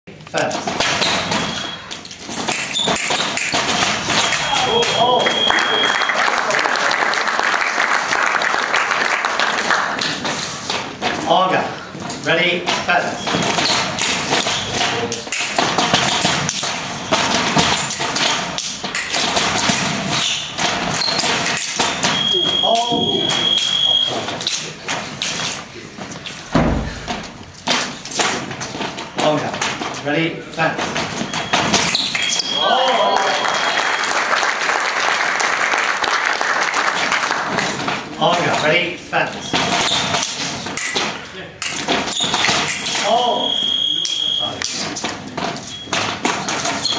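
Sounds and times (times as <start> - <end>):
fencing blades clashing: 0.2 - 5.8, 9.9 - 32.8, 37.5 - 46.9
fencing blades clicking: 1.9 - 5.0, 13.7 - 16.8, 17.4 - 22.2, 40.1 - 43.1.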